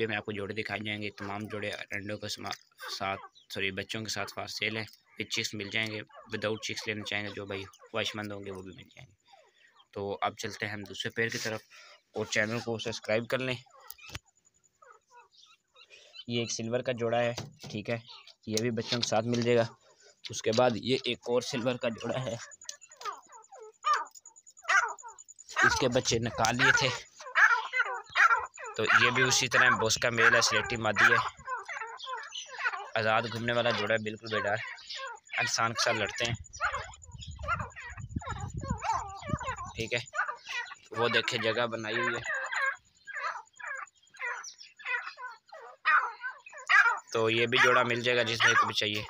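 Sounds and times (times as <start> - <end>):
francolins calling: 0.0 - 49.0.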